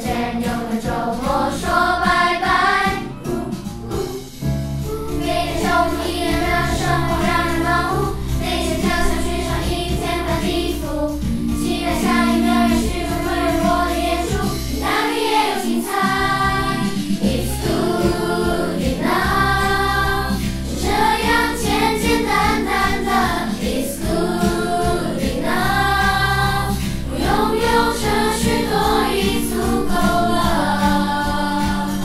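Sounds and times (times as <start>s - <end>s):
children singing: 0.0s - 32.0s
instrumental accompaniment: 0.0s - 32.0s.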